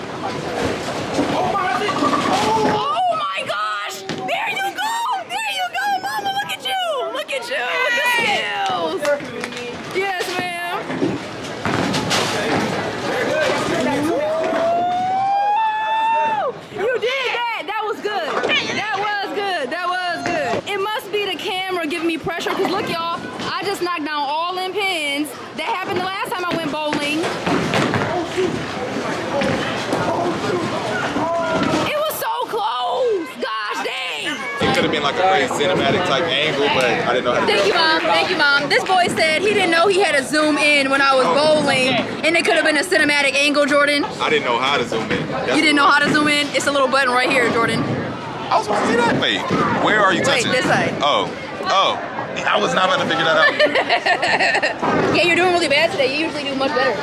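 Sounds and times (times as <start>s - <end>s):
noisy clatter: 9.0s - 14.6s.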